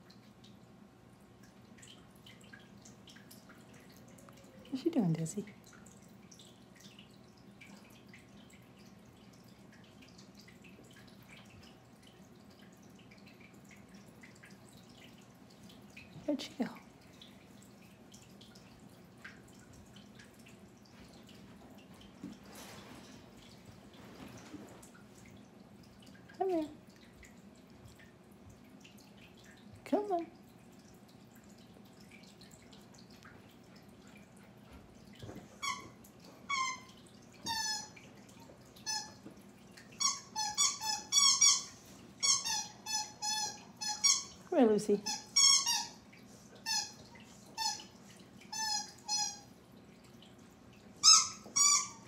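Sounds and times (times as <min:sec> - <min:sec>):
squeaky toy squeaks: 0:40.0 - 0:44.3, 0:45.1 - 0:46.0, 0:48.5 - 0:49.4, 0:51.0 - 0:52.0.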